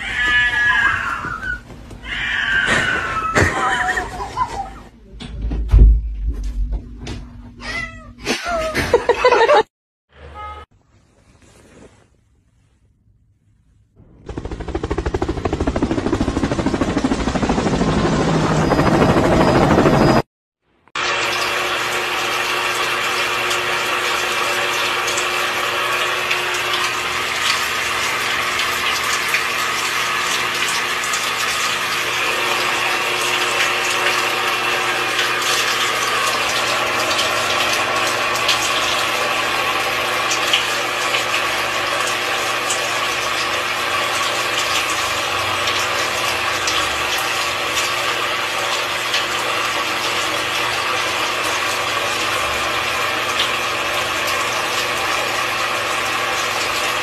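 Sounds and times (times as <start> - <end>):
shower water spraying: 21.0 - 57.0.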